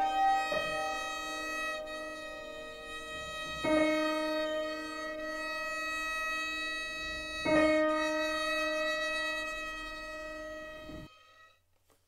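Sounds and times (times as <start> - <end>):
violin and piano chord: 0.0 - 11.5.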